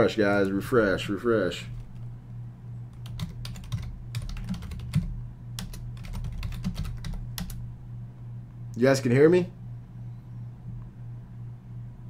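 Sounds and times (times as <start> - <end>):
typing on a computer keyboard: 2.9 - 7.6.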